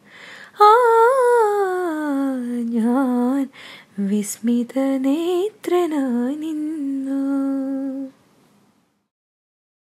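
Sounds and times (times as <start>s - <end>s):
faint room hiss: 0.0s - 9.1s.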